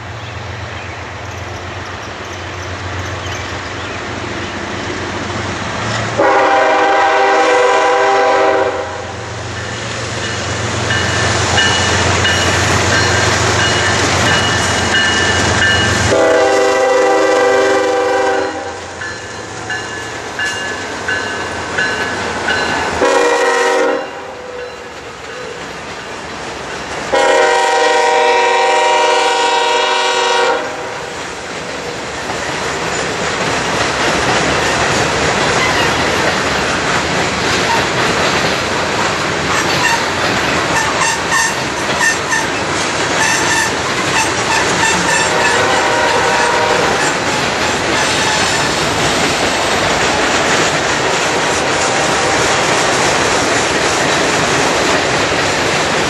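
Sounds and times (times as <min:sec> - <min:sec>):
locomotive air horn: 0:06.2 - 0:09.3, 0:16.0 - 0:18.9, 0:23.0 - 0:24.6, 0:27.1 - 0:31.1, 0:40.8 - 0:42.5, 0:43.2 - 0:47.2
freight cars clicking over rail joints: 0:31.5 - 0:56.0
high wheel squeal: 0:43.2 - 0:45.7.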